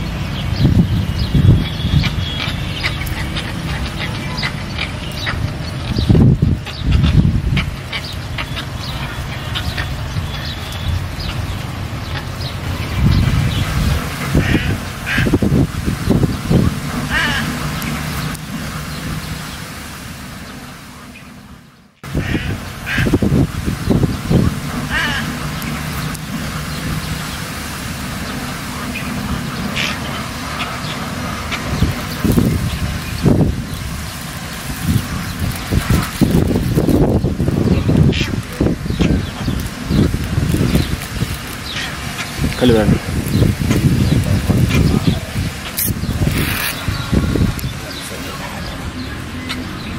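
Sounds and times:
ducks quacking: 0.0s - 19.8s, 22.0s - 49.9s
outdoor background noise: 0.0s - 49.9s.

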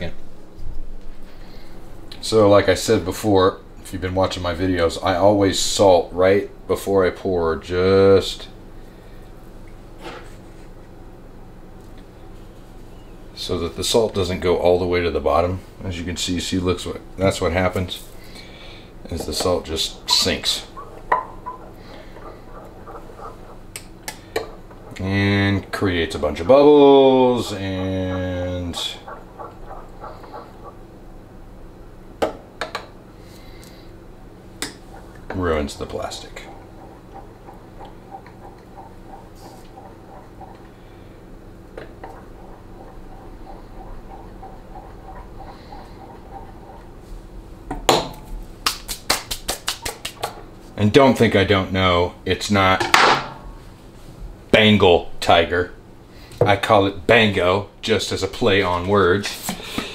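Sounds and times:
low steady hum: 0.0s - 59.9s
light regular ticking: 34.6s - 47.0s
metal spoon stirring liquid: 34.9s - 40.8s, 41.8s - 47.0s.

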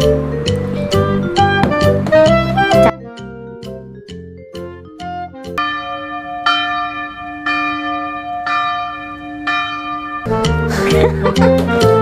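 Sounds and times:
bell tolling: 5.6s - 12.0s.

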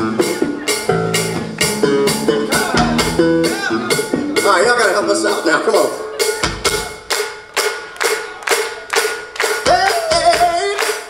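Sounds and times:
hands clapping in a beat: 6.7s - 11.0s.

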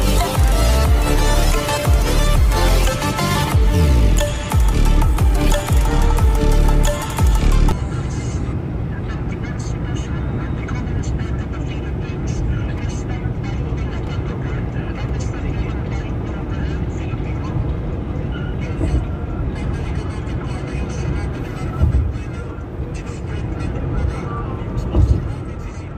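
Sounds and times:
electronic music: 0.0s - 7.9s
car engine and road noise: 0.0s - 25.9s.

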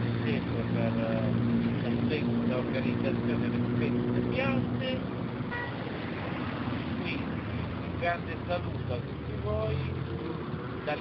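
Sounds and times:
brief high tone: 5.5s - 5.8s.

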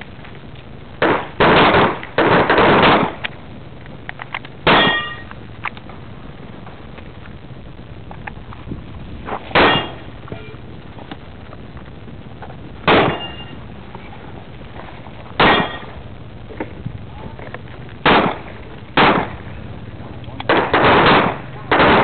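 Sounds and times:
pistol shots: 1.0s - 3.2s, 4.6s - 5.2s, 9.5s - 10.0s, 12.8s - 13.5s, 15.4s - 15.9s, 18.0s - 19.4s, 20.4s - 22.0s.

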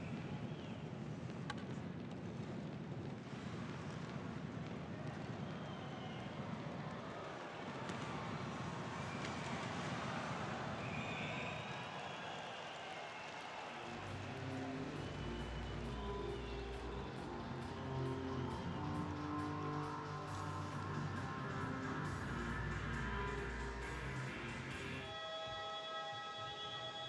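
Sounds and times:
arena crowd noise: 3.2s - 27.0s
arena music: 13.9s - 27.0s.

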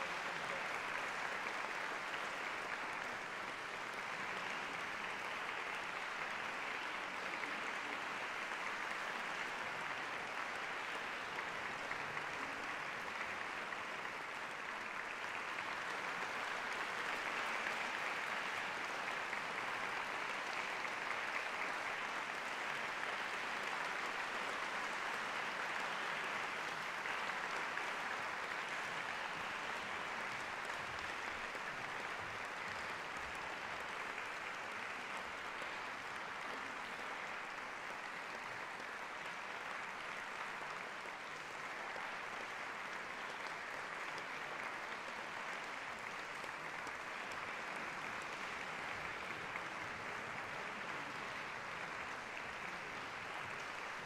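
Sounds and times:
audience applauding: 0.0s - 54.0s.

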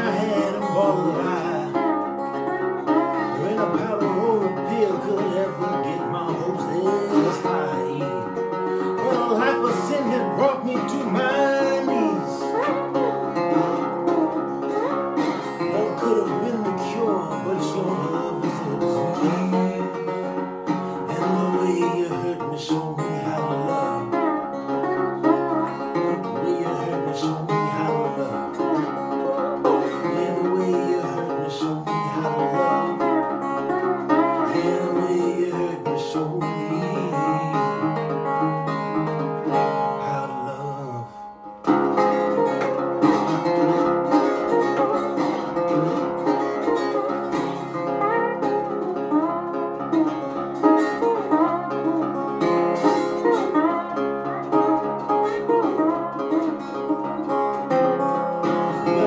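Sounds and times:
slide resonator guitar blues: 0.0s - 59.0s.

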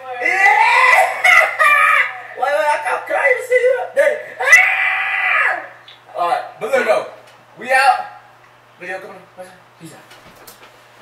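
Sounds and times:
person screaming: 0.0s - 2.5s, 4.1s - 5.8s.

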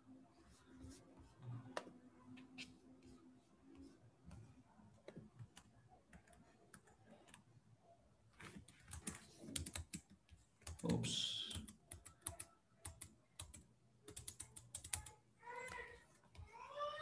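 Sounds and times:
keyboard typing: 5.0s - 7.5s, 8.4s - 16.4s.

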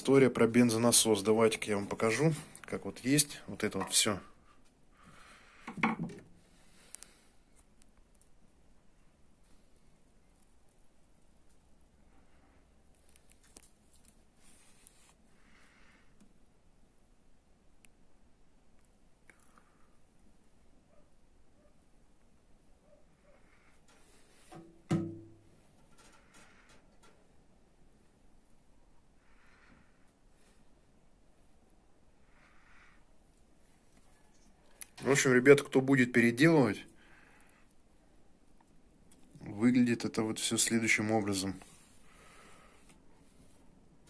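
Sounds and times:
soft rubbing hiss: 9.4s - 16.1s, 38.7s - 44.0s
hollow knock: 24.6s - 25.4s.

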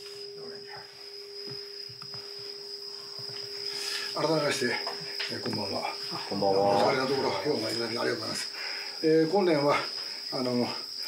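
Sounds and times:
insects trilling: 0.0s - 11.0s
man speaking: 4.2s - 8.4s.

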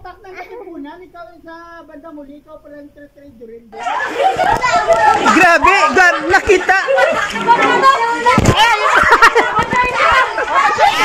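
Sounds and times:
children shouting at play: 3.8s - 11.0s.

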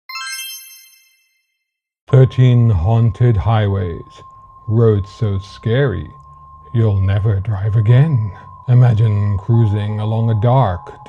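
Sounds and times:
short bright bell chime: 0.1s - 1.6s.

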